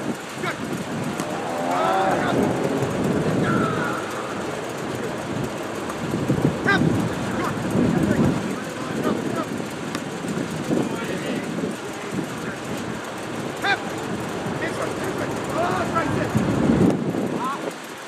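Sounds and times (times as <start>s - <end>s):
distant voices calling out: 0.0s - 17.8s
low rumble: 0.8s - 9.5s.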